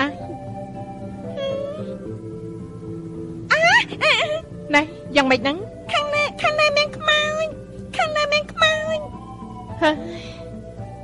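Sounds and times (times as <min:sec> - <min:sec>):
soft background music: 0:00.0 - 0:11.0
high-pitched voice: 0:01.2 - 0:02.0, 0:03.5 - 0:09.2.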